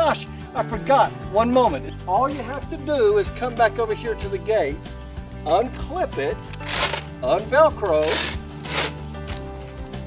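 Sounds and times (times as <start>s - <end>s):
background music: 0.0s - 10.0s
zipper pulled open: 6.5s - 7.2s, 7.9s - 9.8s.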